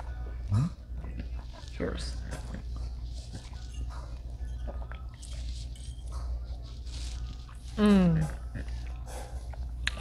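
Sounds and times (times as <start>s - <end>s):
chewing and mouth sounds: 0.0s - 10.0s
low room hum: 0.0s - 10.0s.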